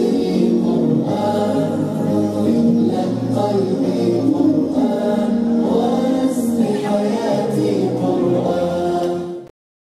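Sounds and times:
several voices singing held notes: 0.0 - 9.5.

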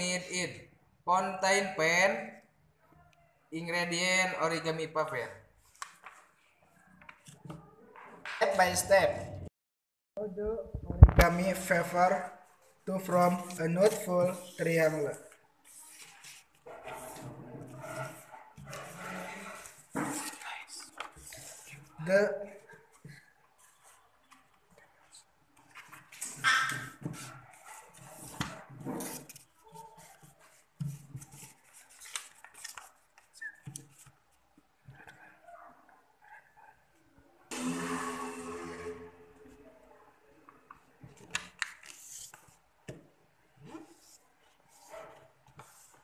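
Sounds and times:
paper rustling and crinkling: 5.6 - 7.5, 13.3 - 21.8, 25.6 - 34.4.

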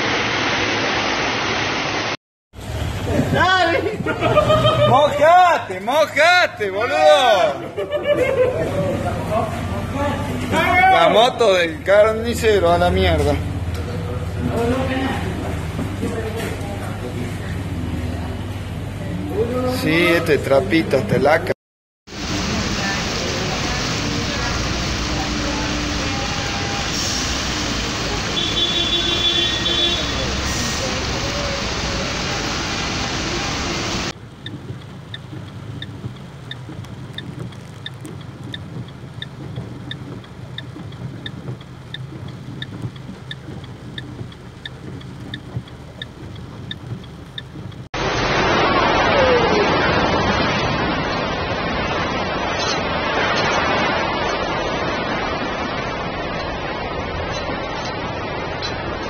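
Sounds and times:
cars driving through deep water: 0.0 - 21.5, 22.1 - 59.0
rushing floodwater: 22.1 - 59.0
steady ticking: 34.1 - 47.9.

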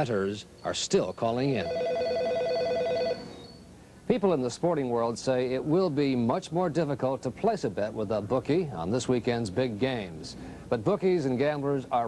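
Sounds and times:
telephone ringing: 1.6 - 3.4.

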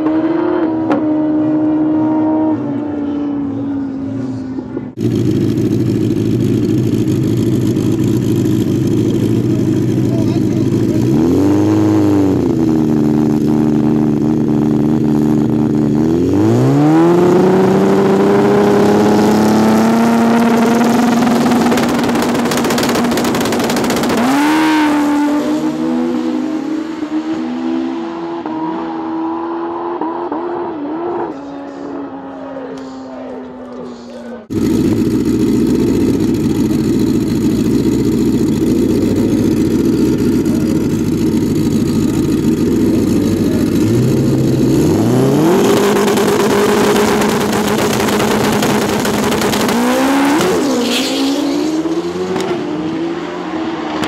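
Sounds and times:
motorcycle engine revving: 0.0 - 54.0
drag motorcycle engine launching: 17.2 - 26.1, 34.5 - 52.7.

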